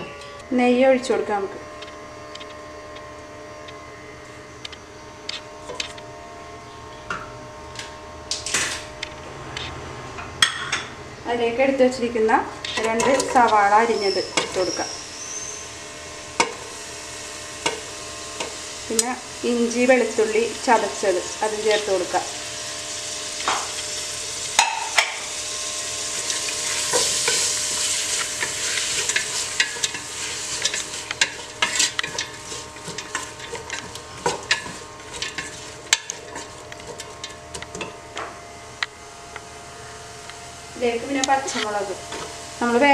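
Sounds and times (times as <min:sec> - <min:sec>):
onions sizzling in hot oil: 0:11.3 - 0:42.9.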